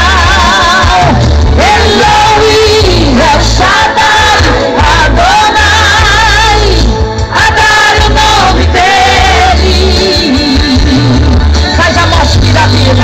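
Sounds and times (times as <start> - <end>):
crowd noise: 0.0 - 13.0
worship music over stage speakers: 0.0 - 13.0.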